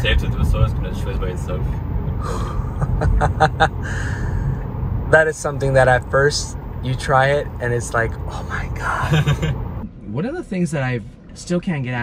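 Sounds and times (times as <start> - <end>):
road and tyre noise: 0.0 - 12.0
person laughing breathily: 2.2 - 4.5, 8.9 - 9.6.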